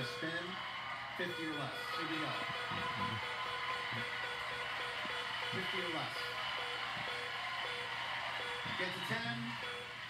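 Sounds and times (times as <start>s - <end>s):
audience shouting and cheering: 0.0s - 10.0s.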